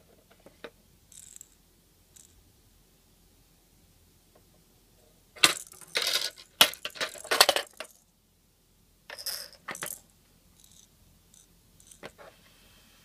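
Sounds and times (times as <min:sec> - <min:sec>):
plastic ball clattering down ramps: 0:05.4 - 0:08.0.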